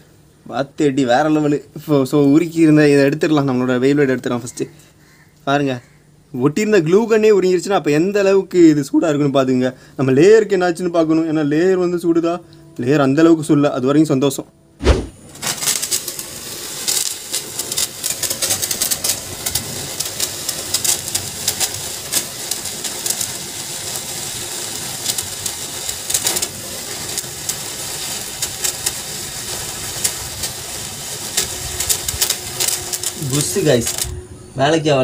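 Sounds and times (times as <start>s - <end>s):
spinning top whirring scrape: 14.8s - 34.2s
spinning top rattling clicks: 15.4s - 34.1s.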